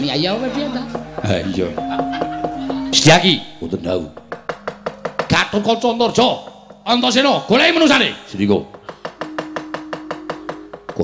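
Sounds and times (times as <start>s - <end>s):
steady held note: 0.4s - 8.2s
wooden knocking roll: 4.0s - 11.0s.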